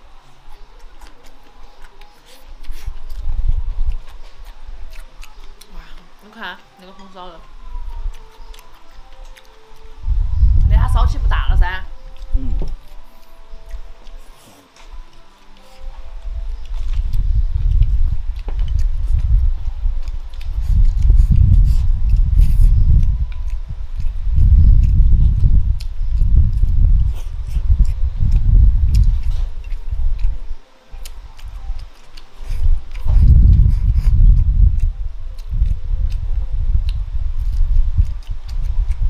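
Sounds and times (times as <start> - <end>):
close chewing and mouth sounds: 0.0 - 39.0.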